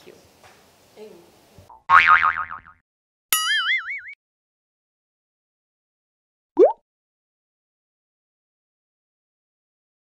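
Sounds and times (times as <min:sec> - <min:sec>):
cartoon boing sound effect: 0:01.7 - 0:02.8, 0:06.6 - 0:06.8.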